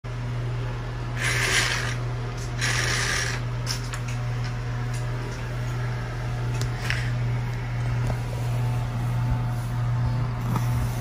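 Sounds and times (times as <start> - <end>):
steady low hum: 0.1 - 11.0.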